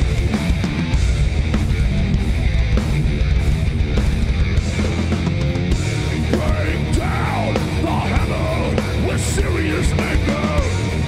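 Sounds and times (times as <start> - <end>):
distorted guitars: 0.0 - 11.0
drums: 0.0 - 11.0
electric bass: 0.0 - 11.0
yelled lead vocal: 5.8 - 11.0.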